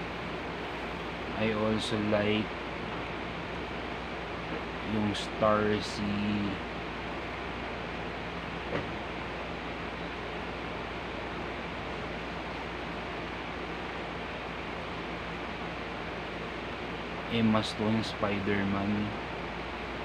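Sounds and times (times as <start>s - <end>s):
background hiss: 0.0s - 20.0s
faint low hum: 0.0s - 20.0s.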